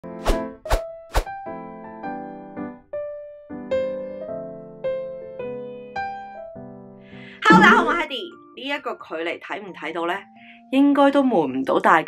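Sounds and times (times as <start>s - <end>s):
sustained keyboard chords: 7.4s - 8.4s
sharp percussive hits: 7.5s - 8.1s.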